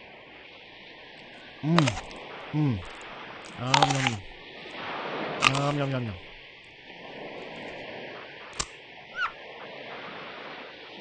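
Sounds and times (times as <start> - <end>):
surf: 0.0 - 11.0
wind noise: 0.0 - 11.0
sharp click: 5.4 - 5.8
bird call: 9.1 - 9.4.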